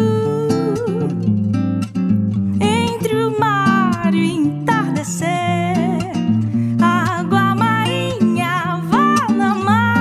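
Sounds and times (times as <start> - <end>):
woman singing: 0.0 - 1.3, 2.6 - 10.0
nylon-string acoustic guitar: 0.0 - 10.0.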